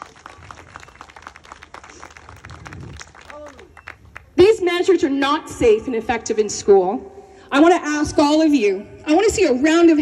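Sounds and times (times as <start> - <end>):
crowd applause: 0.0 - 4.3.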